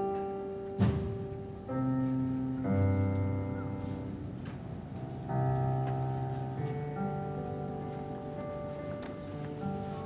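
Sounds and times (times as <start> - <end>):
digital piano playing slow chords: 0.0 - 10.0.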